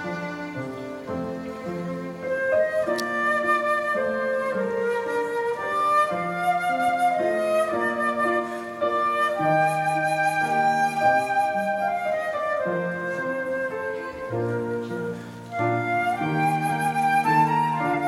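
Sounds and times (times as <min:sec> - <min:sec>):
flute melody: 0:00.0 - 0:18.0
piano: 0:00.0 - 0:18.0
violin: 0:00.0 - 0:18.0.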